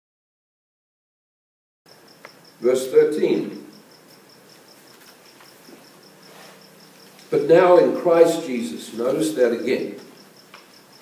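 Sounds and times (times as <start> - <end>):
insect chirping: 1.9 - 11.0.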